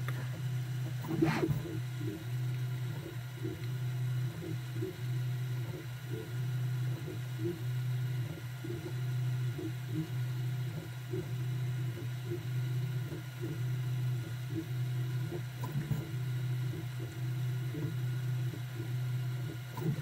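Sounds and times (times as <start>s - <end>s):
stepper motors humming: 0.0s - 20.0s
print head ticks: 0.9s - 20.0s.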